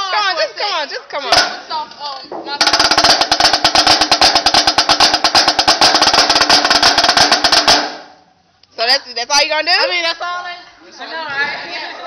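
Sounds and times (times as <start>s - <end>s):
snare drum fast roll: 1.3s - 1.7s, 2.6s - 8.2s.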